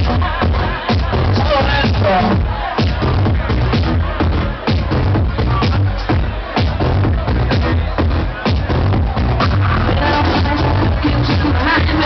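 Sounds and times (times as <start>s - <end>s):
house music over sound system: 0.0s - 12.0s.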